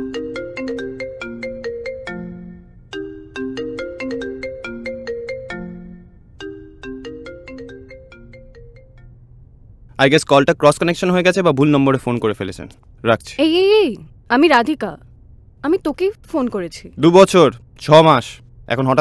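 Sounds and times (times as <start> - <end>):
phone ringtone melody: 0.0 - 9.2.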